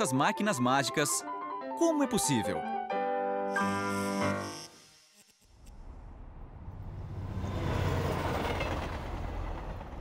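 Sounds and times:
metro train rumbling on viaduct: 6.8 - 10.0.

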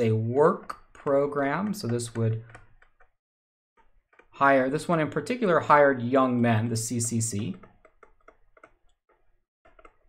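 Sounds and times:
stylus tapping on pen tablet: 1.8 - 3.1, 3.8 - 4.3, 7.5 - 10.0.

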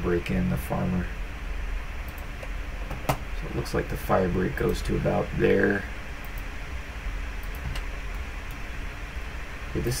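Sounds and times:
low room hum: 0.0 - 10.0
computer mouse clicks: 2.0 - 3.2, 6.2 - 6.5, 7.4 - 8.6.

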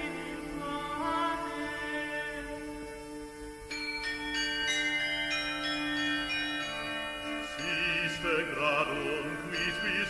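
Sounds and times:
small tuned bells ringing: 3.6 - 10.0.

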